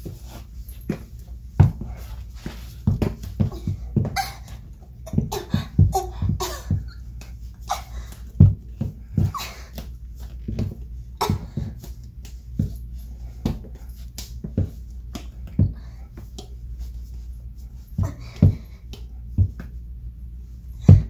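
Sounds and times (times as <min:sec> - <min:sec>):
sneakers thumping and scuffing: 0:00.0 - 0:17.0, 0:17.8 - 0:19.8, 0:20.8 - 0:21.0.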